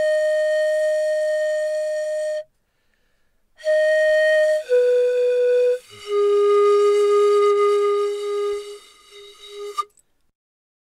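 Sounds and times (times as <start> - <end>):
flute-like wind instrument: 0.0 - 2.5, 3.6 - 9.9.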